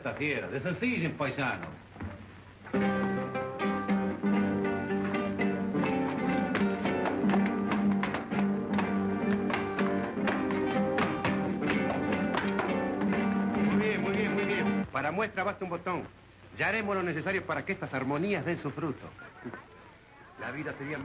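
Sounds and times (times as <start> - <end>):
acoustic guitars playing dance tune: 0.0 - 21.0.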